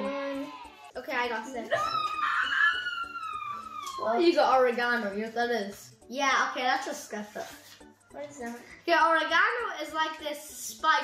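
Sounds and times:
child's high-pitched ooh: 0:01.7 - 0:04.2.

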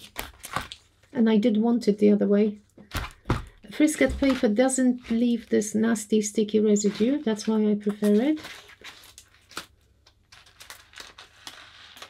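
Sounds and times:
sheets crinkling: 0:06.6 - 0:12.0
film peeled off backing paper: 0:06.7 - 0:12.0.

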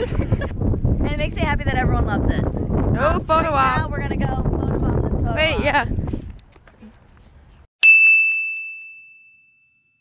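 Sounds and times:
small bell ding: 0:07.8 - 0:10.0.

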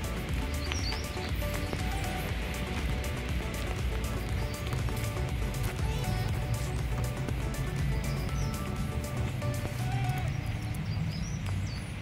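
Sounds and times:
high bird chirps: 0:00.0 - 0:02.4, 0:04.0 - 0:12.0
low outdoor rumble: 0:00.0 - 0:12.0.

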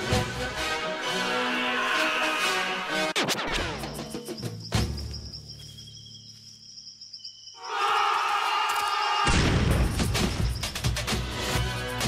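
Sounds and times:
low film score music: 0:00.0 - 0:07.6, 0:08.8 - 0:12.0
insect chirring: 0:03.7 - 0:11.0.

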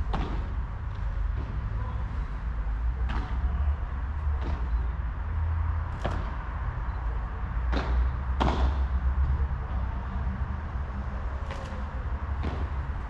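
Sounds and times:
steady low rumble: 0:00.0 - 0:08.2
padel ball struck by rackets: 0:07.6 - 0:08.8.

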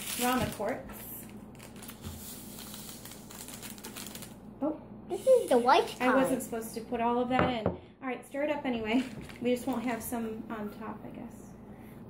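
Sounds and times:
plastic packet crinkling: 0:00.0 - 0:04.5, 0:08.9 - 0:10.0.

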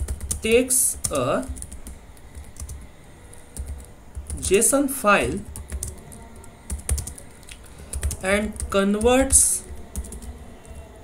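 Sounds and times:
computer keyboard typing: 0:00.0 - 0:04.6, 0:05.3 - 0:11.0.

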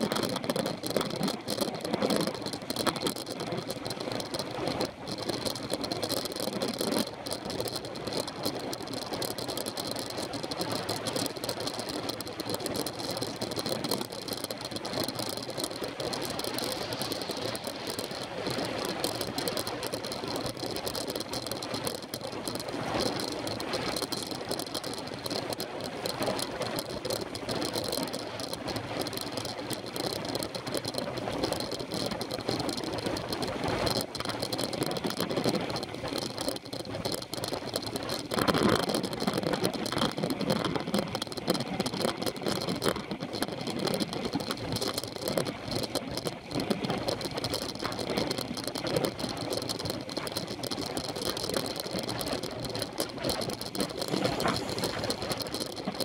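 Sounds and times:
bicycle rattling: 0:00.0 - 0:56.0
wind and road noise: 0:00.0 - 0:56.0.

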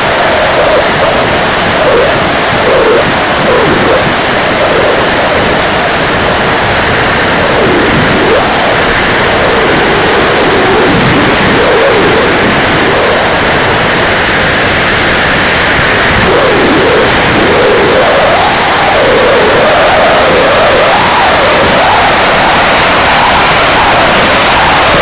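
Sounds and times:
electric ducted fan rushing: 0:00.0 - 0:25.0.

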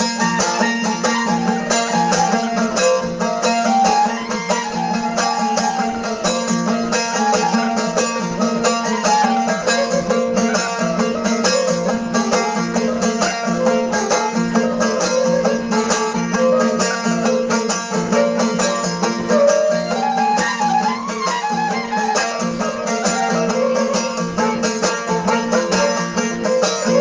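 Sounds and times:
wind instrument melody: 0:00.0 - 0:16.9, 0:18.1 - 0:27.0
strummed long-necked lute: 0:00.0 - 0:27.0.

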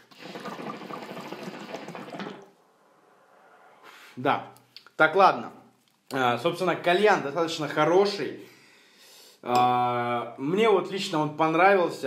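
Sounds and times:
water bubbling in hookah: 0:00.0 - 0:02.6.

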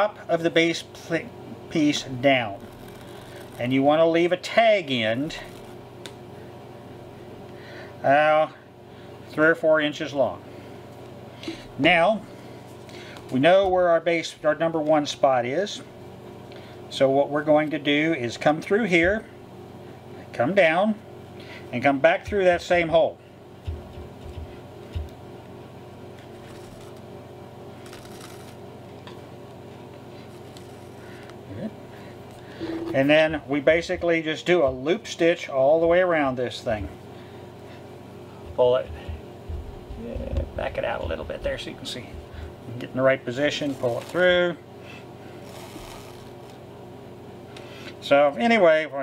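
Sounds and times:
steady low hum: 0:00.0 - 0:49.0
thread pulled through leather: 0:02.3 - 0:03.7, 0:26.2 - 0:27.0, 0:27.8 - 0:28.6, 0:30.2 - 0:31.0, 0:45.4 - 0:46.5.

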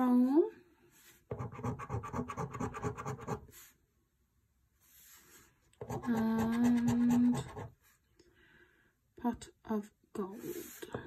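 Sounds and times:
coin scratching a scratch card: 0:05.9 - 0:07.7.

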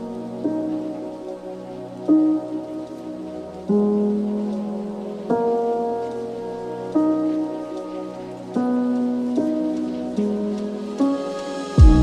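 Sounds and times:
crackling hiss: 0:00.0 - 0:12.0
keyboard chords: 0:00.0 - 0:12.0.

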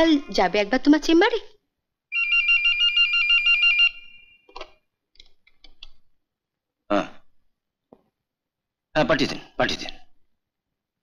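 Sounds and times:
telephone ringing: 0:02.1 - 0:04.6.

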